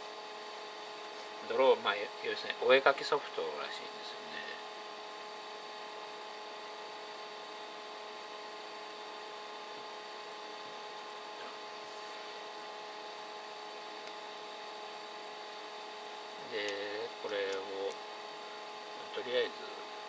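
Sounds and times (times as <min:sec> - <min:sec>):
computer cooling fans humming: 0:00.0 - 0:20.0.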